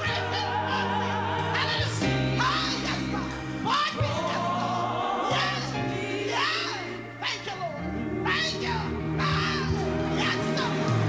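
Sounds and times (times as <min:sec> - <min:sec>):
gospel vocal group singing: 0:00.0 - 0:11.0.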